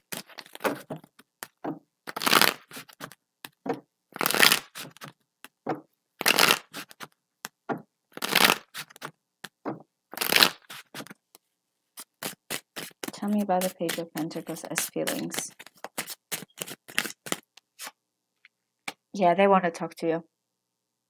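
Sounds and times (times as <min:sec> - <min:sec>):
cards being shuffled: 0:00.0 - 0:05.6, 0:06.2 - 0:11.2, 0:12.0 - 0:18.0
cards tapping and clicking: 0:12.0 - 0:17.7.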